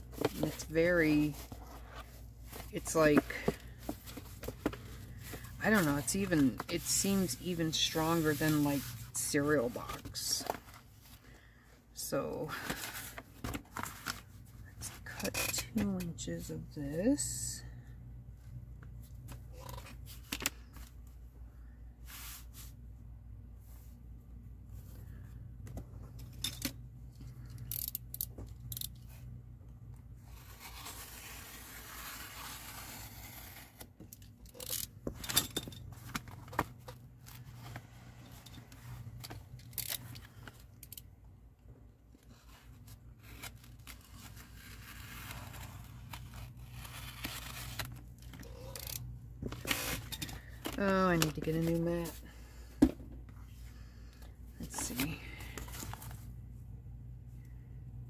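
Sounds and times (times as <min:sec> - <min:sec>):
paper rustling and scraping: 0:00.0 - 0:11.2, 0:30.2 - 0:33.8, 0:42.3 - 0:52.2.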